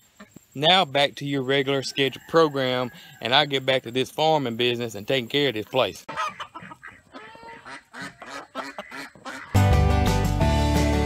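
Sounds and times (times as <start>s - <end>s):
ducks or geese calling: 5.7s - 9.8s
country guitar music: 9.4s - 11.0s.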